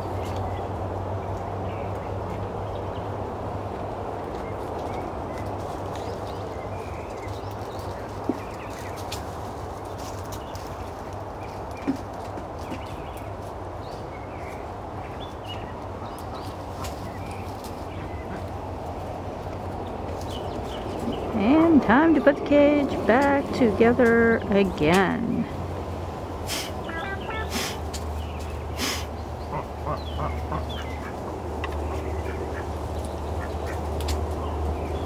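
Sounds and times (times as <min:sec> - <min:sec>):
honeybees humming: 0:17.1 - 0:35.0.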